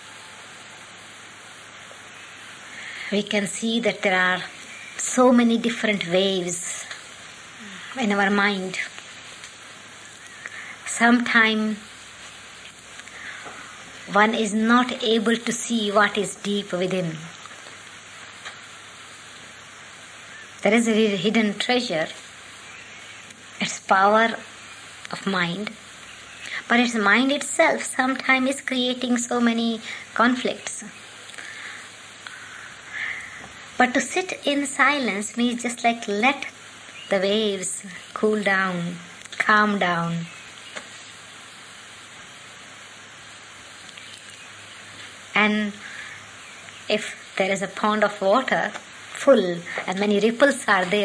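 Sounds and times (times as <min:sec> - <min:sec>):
faint low hum: 0:00.0 - 0:51.0
recording hiss: 0:00.0 - 0:51.0
person speaking: 0:07.6 - 0:09.0, 0:46.9 - 0:51.0.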